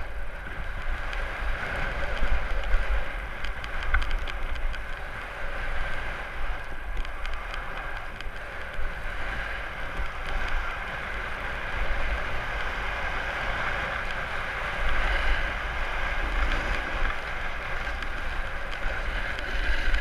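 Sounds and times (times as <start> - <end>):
snowboard scraping over snow: 0.0 - 20.0
wind buffeting microphone: 0.0 - 20.0.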